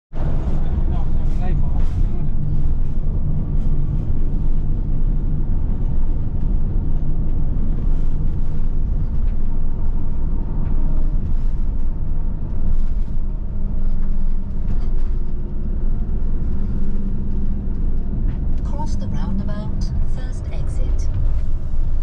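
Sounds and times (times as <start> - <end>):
vehicle road and engine rumble: 0.1 - 22.0.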